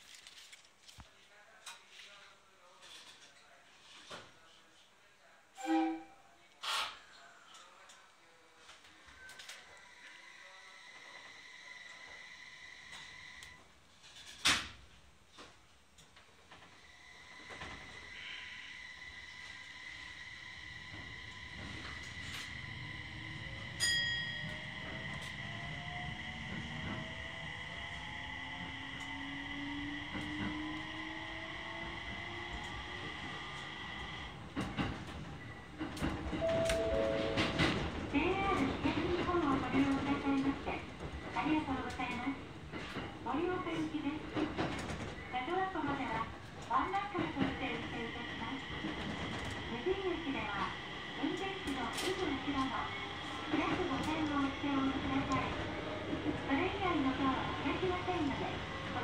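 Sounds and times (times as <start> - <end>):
train motor whine: 16.7 - 23.8
bell-like ding: 23.8 - 24.6, 36.4 - 37.7
train knocks and thunk: 35.8 - 40.2.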